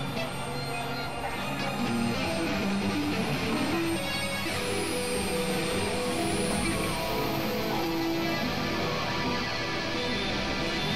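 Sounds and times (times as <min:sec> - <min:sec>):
many music tracks playing at once: 0:00.0 - 0:10.9.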